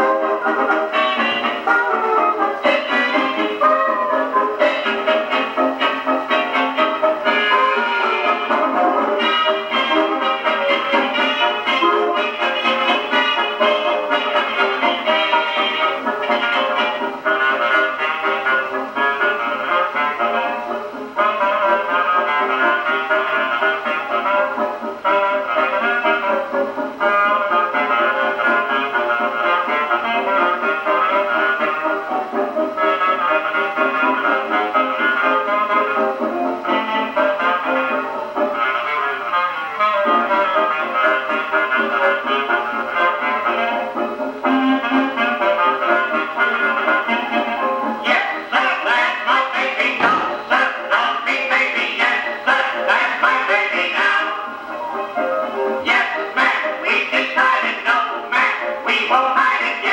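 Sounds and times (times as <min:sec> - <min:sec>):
dance band record on gramophone: 0:00.0 - 0:59.9.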